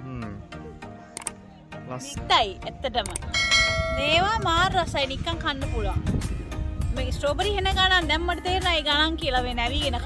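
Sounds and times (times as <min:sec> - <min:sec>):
bright bell tone ringing: 0:03.3 - 0:04.4.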